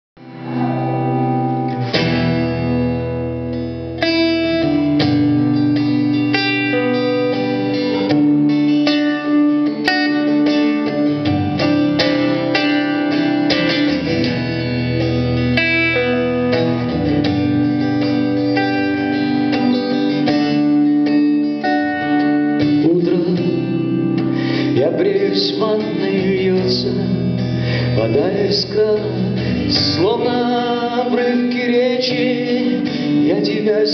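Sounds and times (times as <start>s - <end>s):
acoustic guitar chords: 0.2s - 33.9s.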